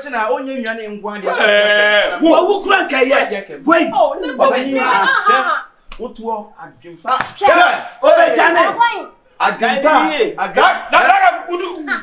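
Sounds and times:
people talking excitedly: 0:01.2 - 0:05.8.

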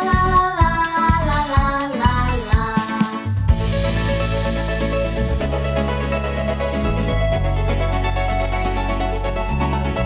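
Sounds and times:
child singing: 0:00.0 - 0:03.3
pop backing track with beat: 0:00.0 - 0:10.0.

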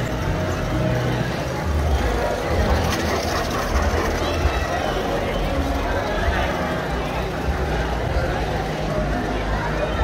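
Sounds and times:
indistinct chatter: 0:00.0 - 0:10.0
model trains rumbling on track: 0:00.0 - 0:10.0.

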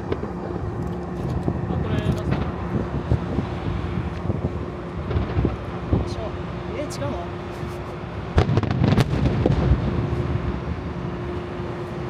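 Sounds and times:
firework rumble: 0:00.0 - 0:12.0.

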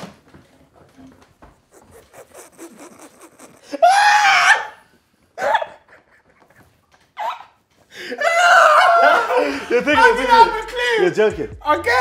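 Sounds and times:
men laughing: 0:01.8 - 0:04.6, 0:05.4 - 0:07.1, 0:08.2 - 0:11.0.

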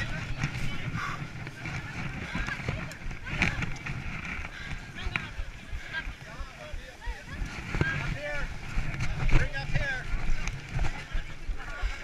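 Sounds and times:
people's voices: 0:00.0 - 0:12.0
wind on microphone: 0:00.0 - 0:12.0.

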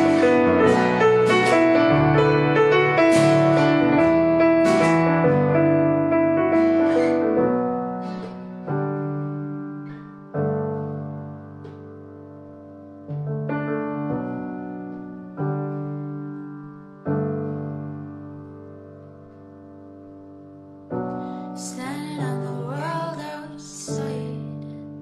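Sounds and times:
piano playing slow chords: 0:00.0 - 0:25.0.

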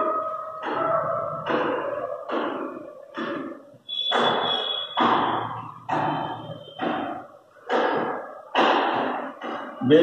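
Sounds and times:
marker squeaking on whiteboard: 0:00.0 - 0:10.0
regular thuds: 0:00.0 - 0:10.0.

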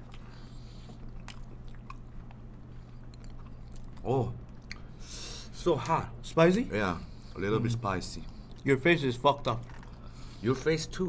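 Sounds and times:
chewing food: 0:00.0 - 0:05.0, 0:08.2 - 0:08.7, 0:09.6 - 0:10.4
steady low hum: 0:00.0 - 0:11.0.

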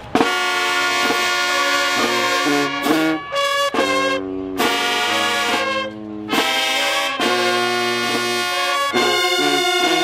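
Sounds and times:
brass band playing chords: 0:00.0 - 0:10.0.

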